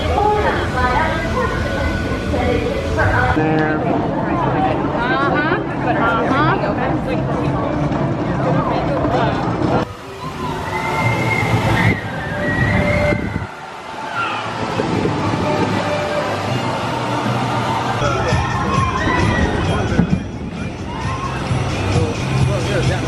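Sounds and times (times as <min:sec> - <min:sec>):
faint background music: 0:00.0 - 0:23.0
visitors' voices: 0:00.0 - 0:23.0.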